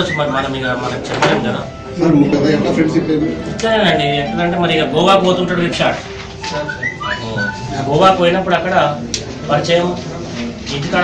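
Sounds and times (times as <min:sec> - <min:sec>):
faint background voices: 0:00.0 - 0:11.0
person whistling: 0:06.5 - 0:07.8.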